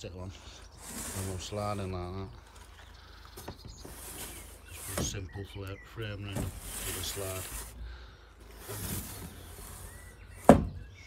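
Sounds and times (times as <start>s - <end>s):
plastic panel scraping on wood: 0.7s - 2.6s, 3.4s - 7.9s, 8.5s - 10.8s.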